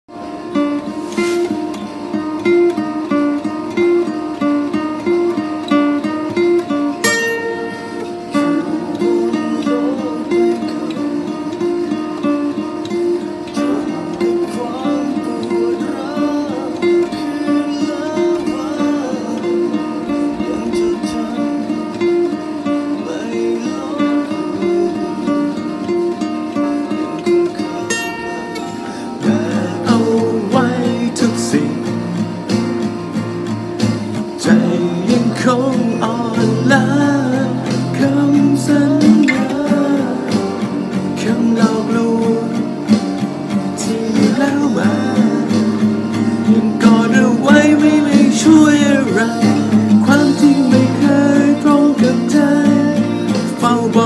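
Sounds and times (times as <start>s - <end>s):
acoustic guitar fingerpicking: 0.1s - 54.0s
person singing: 6.2s - 32.6s, 34.2s - 54.0s.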